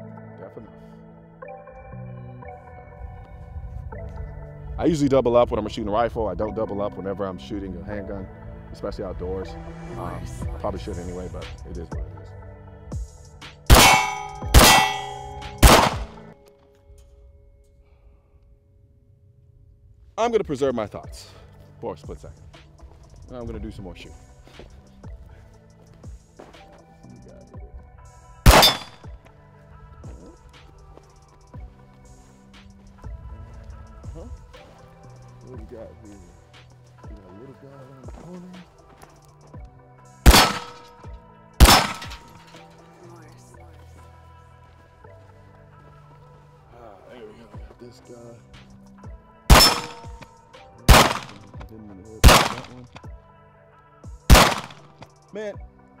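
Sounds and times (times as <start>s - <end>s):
quiet background music: 0.0s - 56.0s
pistol shot echo: 13.7s - 16.3s, 28.5s - 29.1s, 40.3s - 40.9s, 41.6s - 42.4s, 49.5s - 50.3s, 50.9s - 51.5s, 52.2s - 52.9s, 54.3s - 54.9s.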